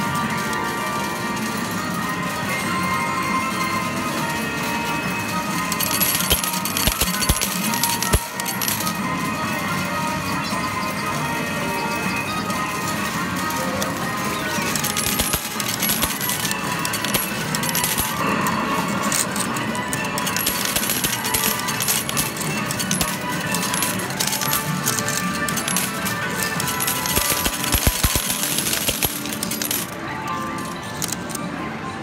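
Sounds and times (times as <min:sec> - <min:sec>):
metal medals clattering: 0:05.3 - 0:09.1, 0:12.6 - 0:31.4
electronic game music: 0:09.8 - 0:31.4.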